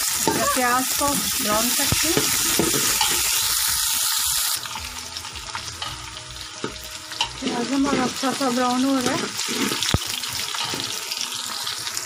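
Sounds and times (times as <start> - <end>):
onions sizzling in a pot: 0.0 - 12.0.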